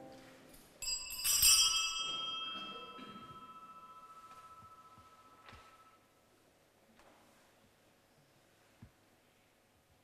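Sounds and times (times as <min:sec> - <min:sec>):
small bells jangling: 0:00.8 - 0:06.0.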